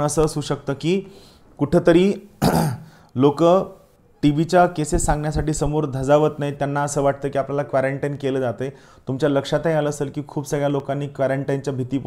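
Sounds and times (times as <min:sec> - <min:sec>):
man speaking: 0:00.0 - 0:12.0
man clearing his throat: 0:02.4 - 0:03.0.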